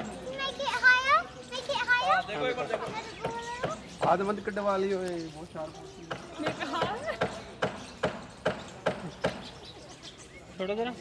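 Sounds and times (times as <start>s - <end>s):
high-pitched voices calling out: 0.1s - 3.9s
child speaking: 0.2s - 3.8s.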